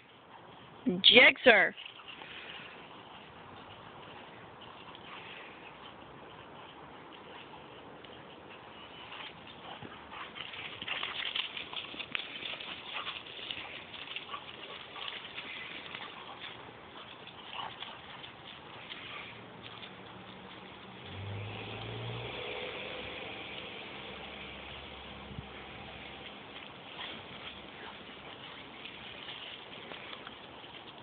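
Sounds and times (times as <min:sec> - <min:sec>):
dog paws pattering on dry grass: 0:00.0 - 0:22.2, 0:23.3 - 0:31.0
vehicle engine running: 0:19.0 - 0:29.2.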